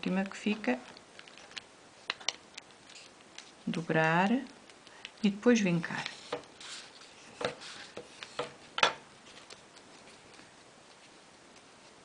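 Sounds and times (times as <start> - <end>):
faint paper handling: 0.2 - 12.0
plastic scraping on paper: 5.9 - 8.6.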